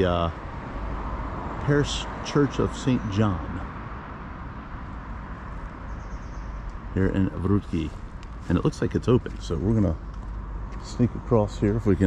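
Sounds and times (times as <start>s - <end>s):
street rumble and hiss: 0.0s - 12.0s
faint bird chirps: 5.7s - 7.6s.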